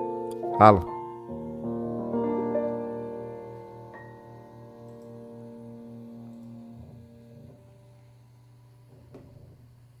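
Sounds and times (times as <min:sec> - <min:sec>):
soft piano chords: 0:00.0 - 0:08.8.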